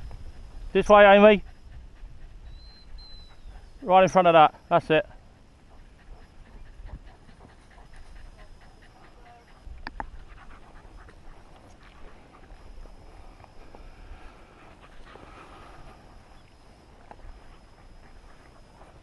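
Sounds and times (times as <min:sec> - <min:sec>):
dog panting: 0:00.0 - 0:19.0.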